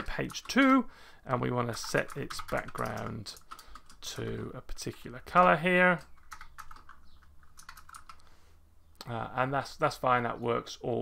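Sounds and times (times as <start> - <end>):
faint keyboard typing: 0.0 - 0.8, 1.6 - 8.3.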